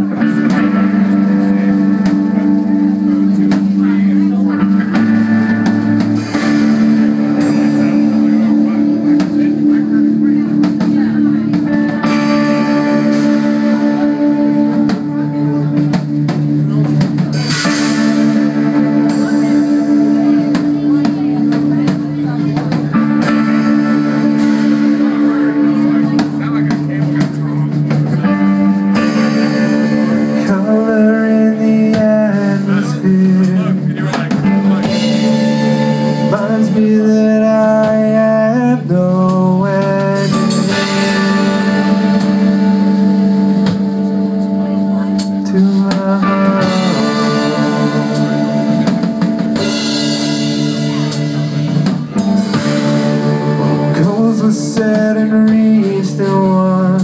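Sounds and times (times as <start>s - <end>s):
drum kit with cymbal hits: 0.0s - 57.0s
electric guitar riffs: 0.0s - 57.0s.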